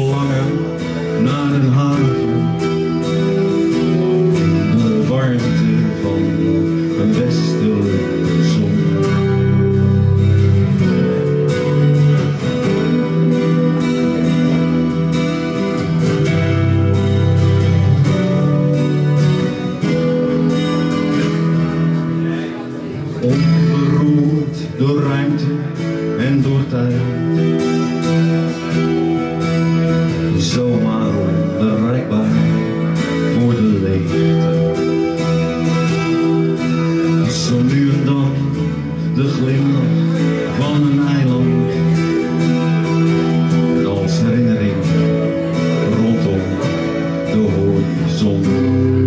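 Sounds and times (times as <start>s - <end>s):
acoustic guitar strumming: 0.0s - 49.0s
electric guitar gliding notes: 0.0s - 49.0s.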